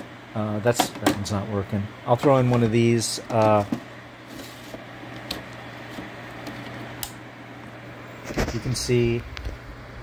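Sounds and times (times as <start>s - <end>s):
server fans whirring: 0.0s - 10.0s.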